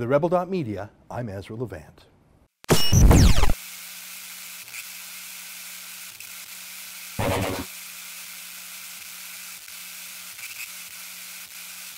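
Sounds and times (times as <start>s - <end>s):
loud burst of noise: 7.2s - 7.8s.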